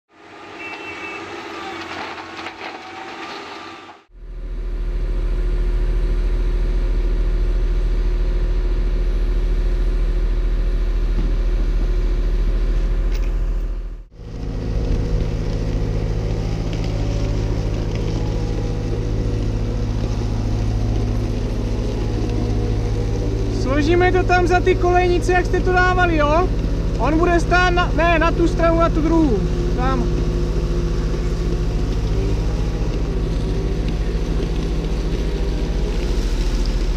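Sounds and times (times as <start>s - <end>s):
excavator diesel engine droning: 0.1s - 36.9s.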